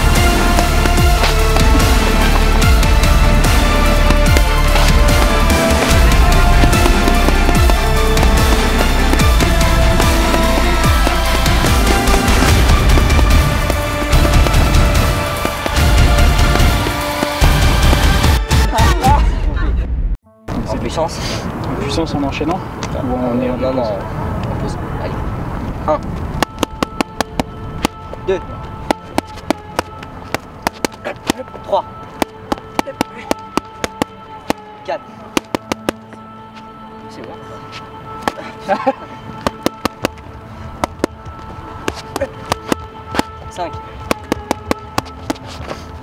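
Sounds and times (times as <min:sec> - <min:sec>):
drum beat: 0:00.0 - 0:19.0
deep sliding bass notes: 0:00.0 - 0:20.9
boxing gloves striking mitts: 0:00.2 - 0:02.9, 0:03.5 - 0:18.4, 0:28.8 - 0:31.5, 0:32.2 - 0:34.7, 0:35.3 - 0:36.0, 0:39.4 - 0:40.2, 0:40.8 - 0:41.2, 0:41.8 - 0:43.4, 0:44.1 - 0:45.4.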